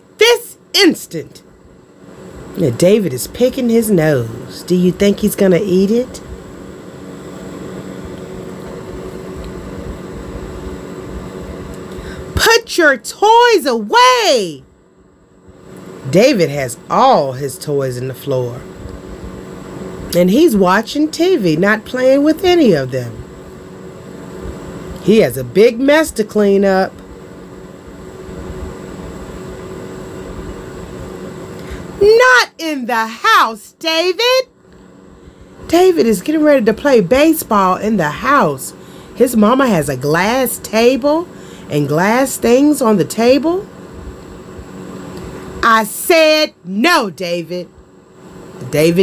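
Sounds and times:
faint constant hum: 0:00.0 - 0:49.0.

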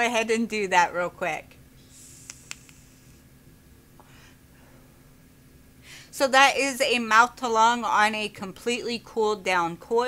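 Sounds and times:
faint hiss of air drawn: 0:01.8 - 0:03.2
small mouthpiece clicks: 0:02.2 - 0:02.9.

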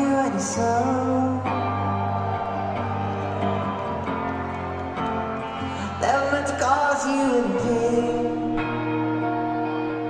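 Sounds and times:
person singing: 0:00.0 - 0:02.1, 0:05.6 - 0:10.0.

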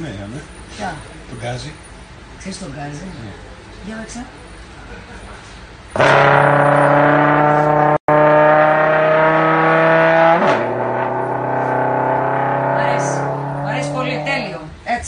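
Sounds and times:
trombone holding long notes: 0:05.9 - 0:14.6.

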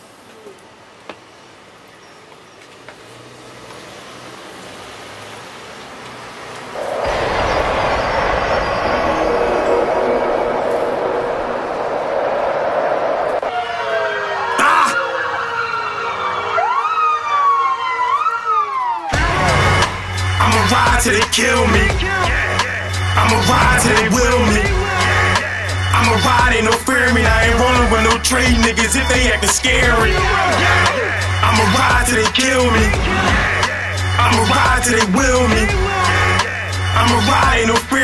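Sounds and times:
steady noisy rush: 0:06.8 - 0:16.2, 0:19.2 - 0:37.8
sirens wailing: 0:06.8 - 0:38.0
hip-hop beat with heavy bass: 0:19.2 - 0:38.0.

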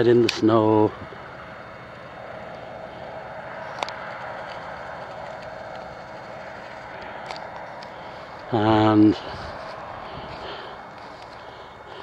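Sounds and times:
distant train rumble: 0:00.0 - 0:12.0.

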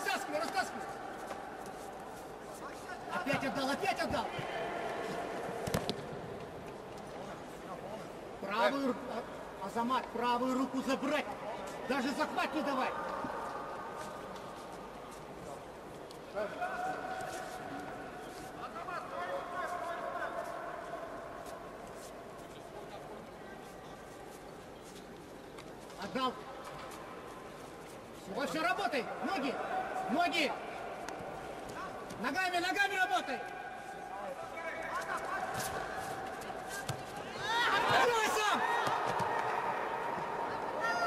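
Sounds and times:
people shouting in a hall: 0:00.0 - 0:05.8, 0:16.4 - 0:18.1, 0:28.5 - 0:41.0
sports hall background noise: 0:00.0 - 0:41.0.

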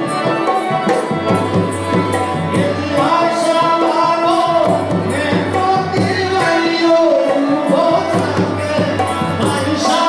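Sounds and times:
harmonium chords: 0:00.0 - 0:10.0.

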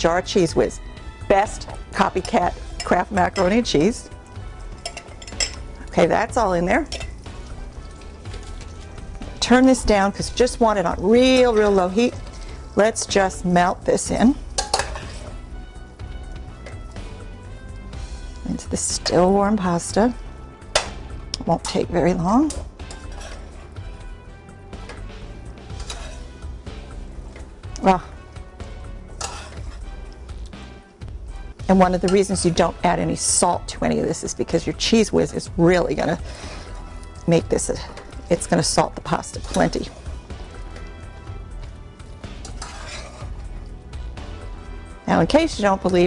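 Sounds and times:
background music sustained tones: 0:00.0 - 0:46.0
spoon stirring in metal pot: 0:01.6 - 0:19.3, 0:20.6 - 0:30.8, 0:31.4 - 0:32.7, 0:35.9 - 0:44.9.

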